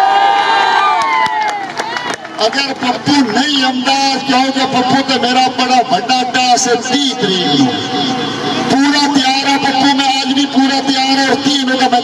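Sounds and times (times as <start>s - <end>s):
crowd cheering and shouting: 0.0s - 2.7s
sharp claps: 1.0s - 2.8s.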